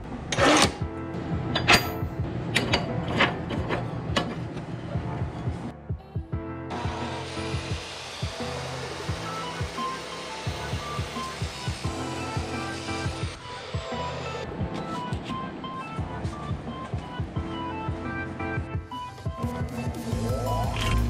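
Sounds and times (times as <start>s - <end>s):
background music: 0.0s - 21.0s
metal clanks and knocks: 1.5s - 4.8s
saw motor whirring: 6.7s - 14.4s.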